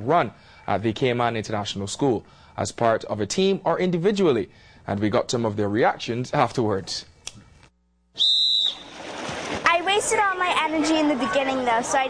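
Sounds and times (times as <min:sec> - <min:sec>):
whistle blast: 0:08.2 - 0:09.0
crowd voices: 0:09.7 - 0:12.0.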